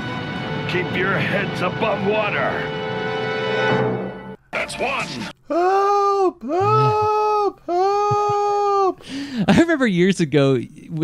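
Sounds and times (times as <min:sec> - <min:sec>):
cartoon voice crying out: 0:05.5 - 0:09.0.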